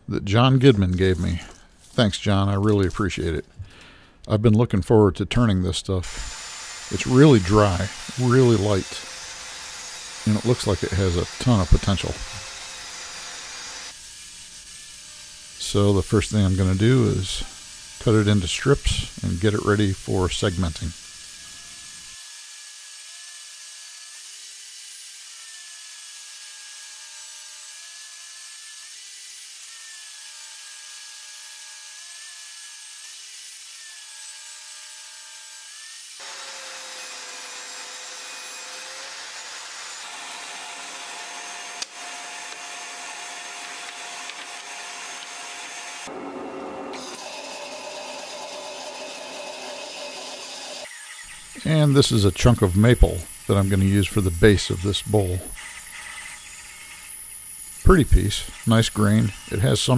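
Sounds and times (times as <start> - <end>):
table saw blade whine: 6.0 - 59.9.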